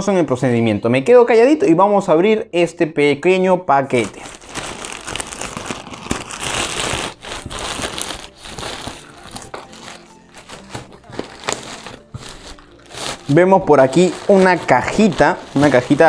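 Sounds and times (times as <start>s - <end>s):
plastic bag crinkling: 3.9s - 16.0s.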